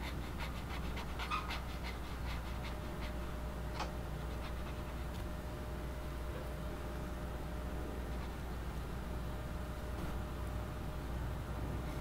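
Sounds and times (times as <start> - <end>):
pen scratching on paper: 0.0 - 3.3, 4.2 - 5.2.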